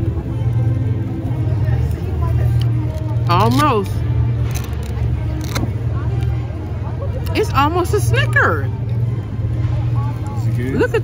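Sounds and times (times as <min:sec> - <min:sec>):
faint crowd voices: 0:00.0 - 0:11.0.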